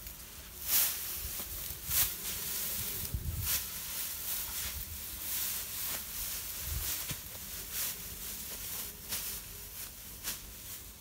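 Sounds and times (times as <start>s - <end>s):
tall grass rustling: 0.0s - 11.0s.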